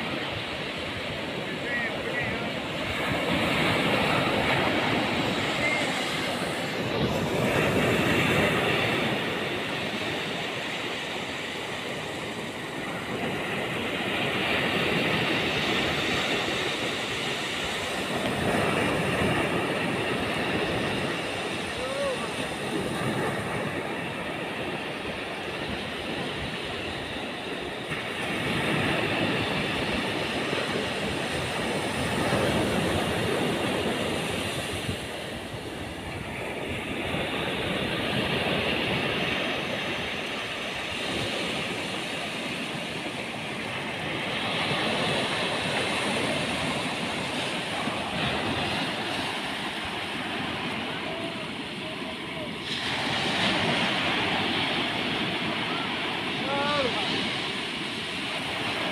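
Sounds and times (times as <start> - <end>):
ocean surf breaking on beach: 0.0 - 58.9.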